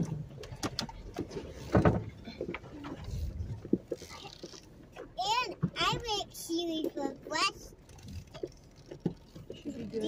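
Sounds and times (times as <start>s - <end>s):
low engine rumble: 0.0s - 10.0s
vehicle knocks and creaks: 0.0s - 10.0s.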